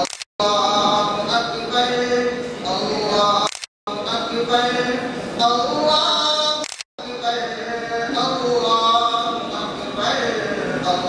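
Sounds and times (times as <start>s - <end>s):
man chanting: 0.4s - 11.0s.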